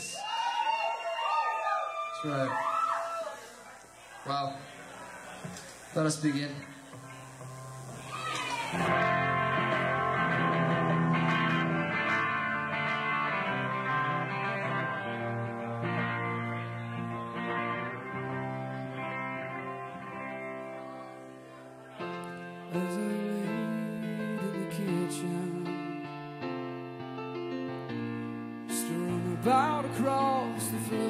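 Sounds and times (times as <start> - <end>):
electric guitar ringing chords: 6.0 - 31.0.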